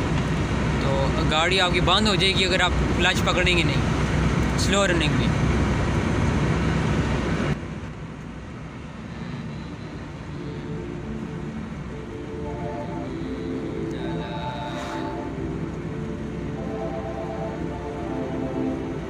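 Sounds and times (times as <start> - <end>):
car engine and tyres on road: 0.0 - 19.0
soft background music: 9.8 - 19.0.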